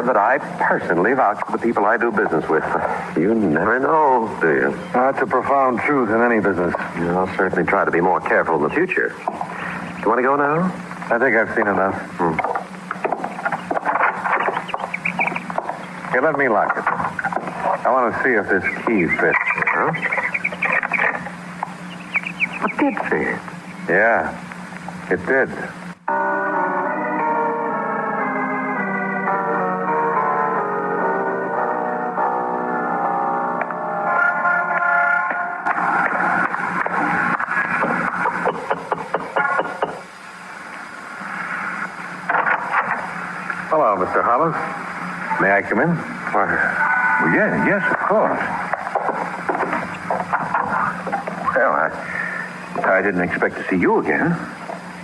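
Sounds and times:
held keyboard chords: 0.0s - 40.1s.

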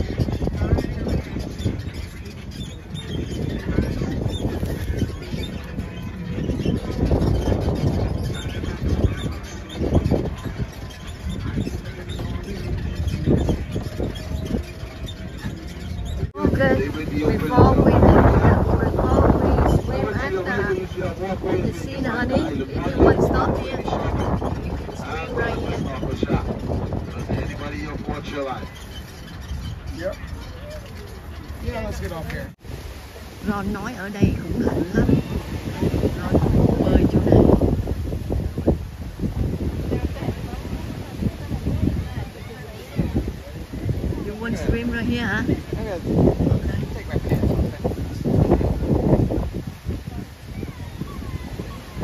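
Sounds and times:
people talking: 0.0s - 28.9s, 29.8s - 52.0s
wind buffeting microphone: 0.0s - 52.0s.

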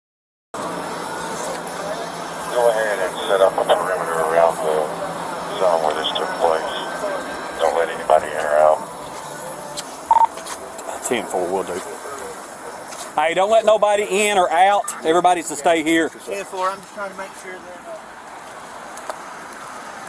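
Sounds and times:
indistinct voices talking: 0.6s - 18.2s.

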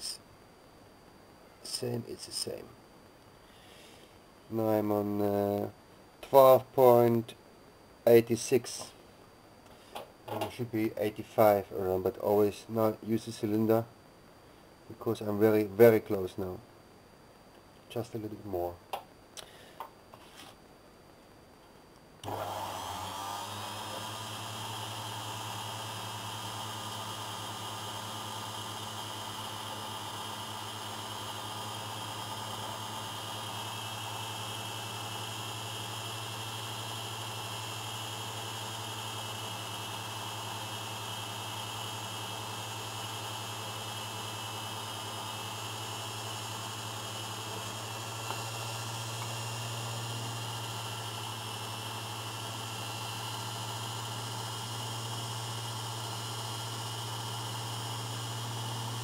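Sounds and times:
lathe motor humming: 22.2s - 59.0s.

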